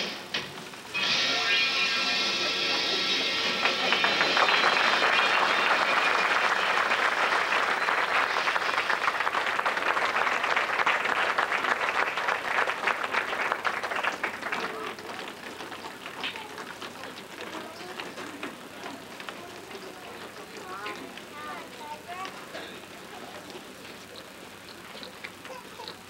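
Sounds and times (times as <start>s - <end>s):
audience applauding: 2.2s - 26.0s.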